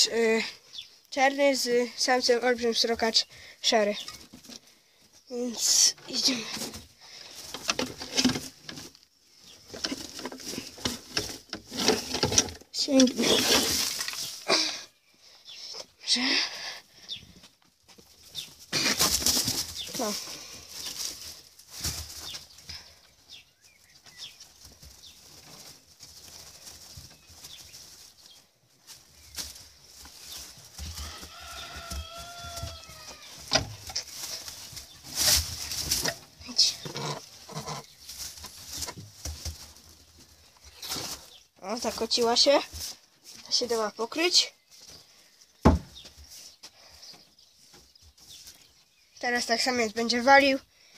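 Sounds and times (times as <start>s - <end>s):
rabbits scuffling in straw: 0.0s - 14.5s, 17.0s - 50.7s
handling noise on microphone: 7.5s - 14.4s.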